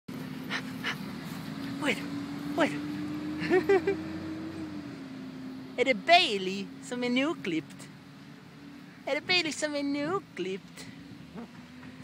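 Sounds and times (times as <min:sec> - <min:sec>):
dog breaths: 0:00.4 - 0:01.8.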